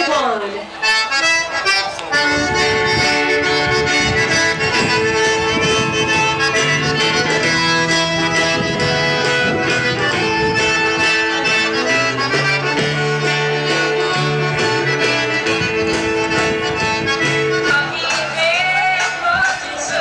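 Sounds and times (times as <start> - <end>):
live band playing instrumental: 0.0 - 20.0
bass line: 1.2 - 19.6.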